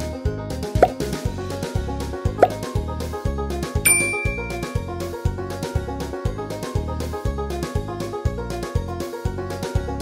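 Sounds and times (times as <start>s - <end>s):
background music with steady beat: 0.0s - 10.0s
bright ding: 3.9s - 4.9s.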